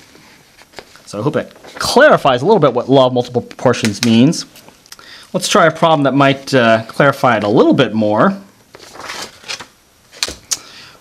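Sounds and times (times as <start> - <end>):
paper sliding with dry rustle: 8.7 - 10.2.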